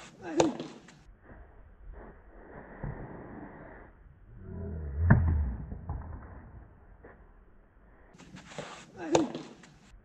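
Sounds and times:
racket hitting ball: 5.0s - 6.6s.

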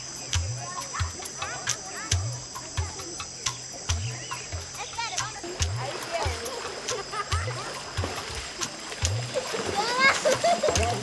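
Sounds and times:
background music with low beat: 0.0s - 11.0s
children splashing in water: 4.9s - 11.0s
children calling out: 9.2s - 11.0s.

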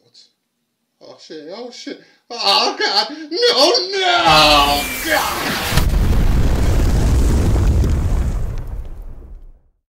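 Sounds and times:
explosion rumble: 4.5s - 9.7s
faint crackles: 5.0s - 9.6s.

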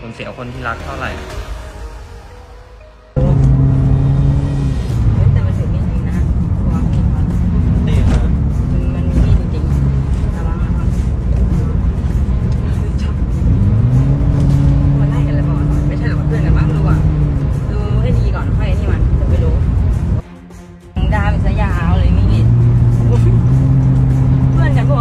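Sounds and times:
car engine running: 3.2s - 20.2s, 21.0s - 25.0s.

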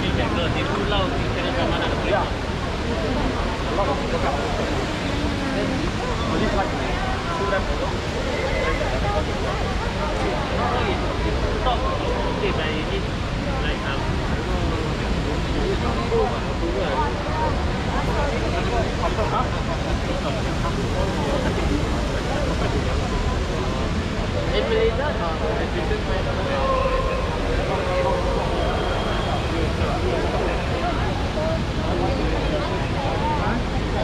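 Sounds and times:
city traffic rumble: 0.0s - 34.0s
people talking: 0.0s - 34.0s.

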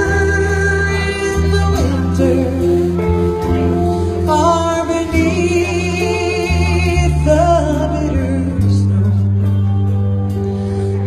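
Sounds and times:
live band playing: 0.0s - 11.0s
low bass notes: 0.0s - 11.0s.

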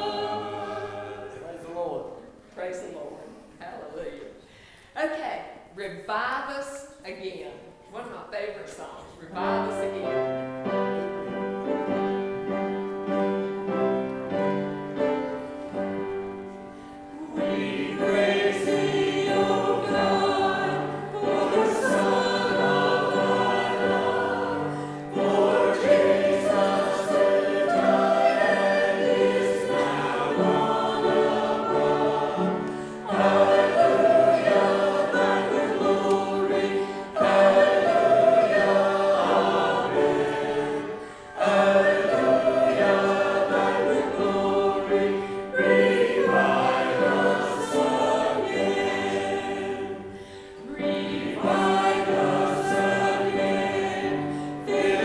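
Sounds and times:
congregation singing a hymn: 0.0s - 3.2s, 9.3s - 55.0s.

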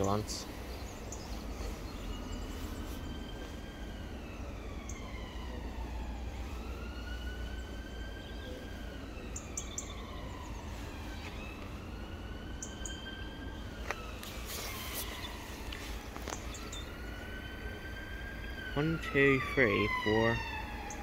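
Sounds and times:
emergency siren wailing: 0.0s - 21.0s.

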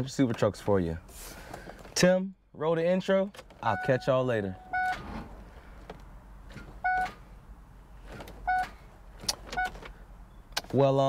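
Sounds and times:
car warning chime beeps: 3.6s - 5.0s, 6.8s - 7.2s, 8.4s - 8.8s.

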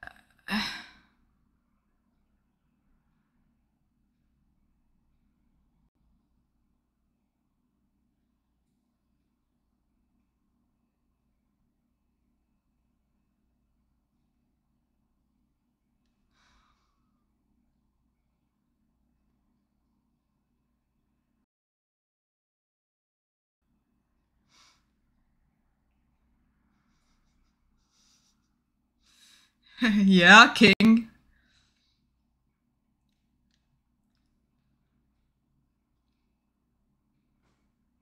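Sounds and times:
woman sighing: 0.0s - 1.0s, 29.8s - 31.0s.

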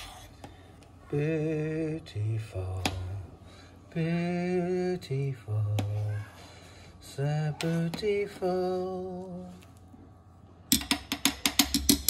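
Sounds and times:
drum and wood-block hits: 10.7s - 12.0s.

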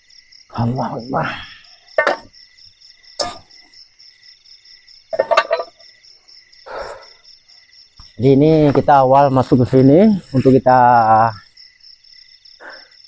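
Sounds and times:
night insects chirring: 0.0s - 13.0s
camping gear knocks and rustles: 2.0s - 2.4s, 5.1s - 5.9s.

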